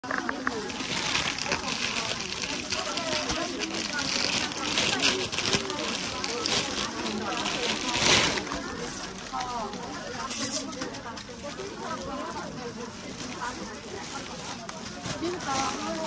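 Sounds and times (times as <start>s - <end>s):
background voices talking: 0.0s - 16.0s
plastic wrapping crinkling: 0.0s - 16.0s.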